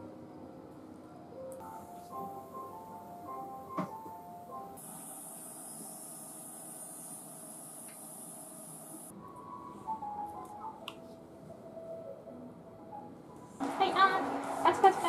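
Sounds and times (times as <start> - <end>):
faint background music: 0.0 - 5.8, 9.1 - 15.0.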